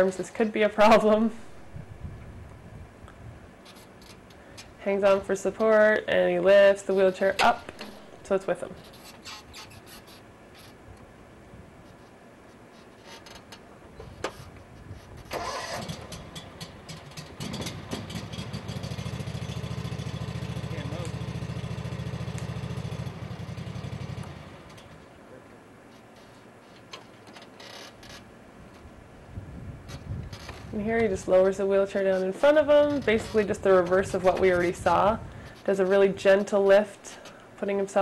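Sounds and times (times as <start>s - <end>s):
mower engine cranking and running: 7.0s - 9.8s, 15.2s - 25.1s.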